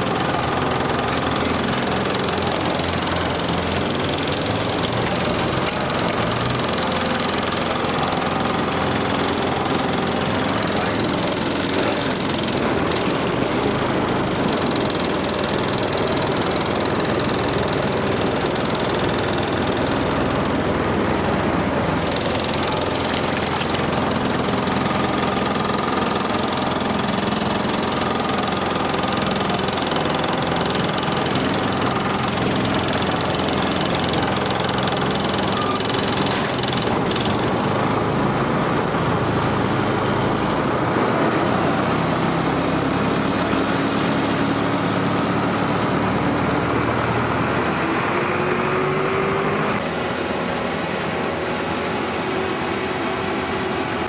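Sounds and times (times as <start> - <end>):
boat engine idling: 0.0 - 54.0.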